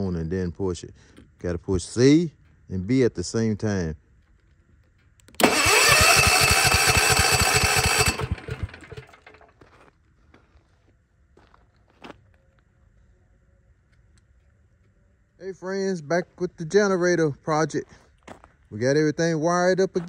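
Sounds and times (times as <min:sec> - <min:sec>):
generator starter cranking engine: 0:05.3 - 0:09.6.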